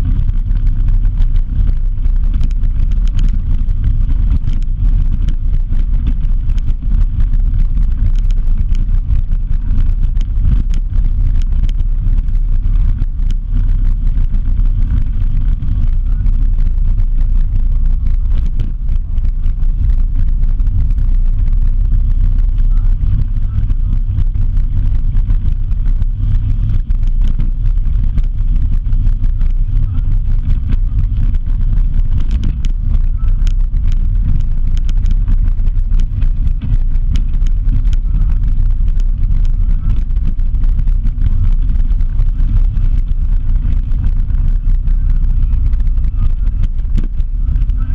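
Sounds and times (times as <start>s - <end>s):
vehicle travel noise: 0.0s - 47.9s
wind buffeting microphone: 0.0s - 47.9s.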